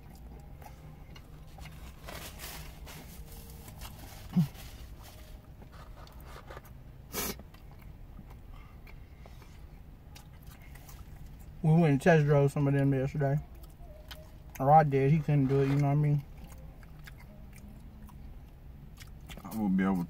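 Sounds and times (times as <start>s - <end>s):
chewing and biting burger: 0.0s - 11.6s, 13.5s - 20.0s
faint steady hum: 0.0s - 20.0s.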